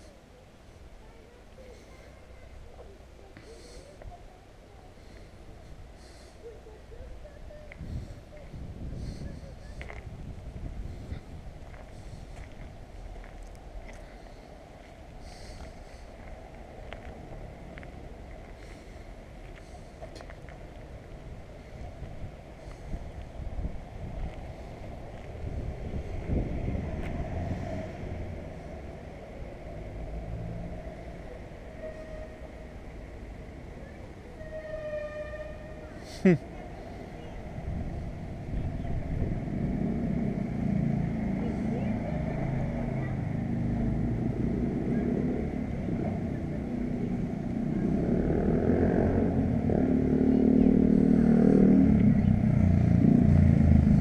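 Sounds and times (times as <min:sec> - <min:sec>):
distant road traffic rumble: 0:00.0 - 0:54.0.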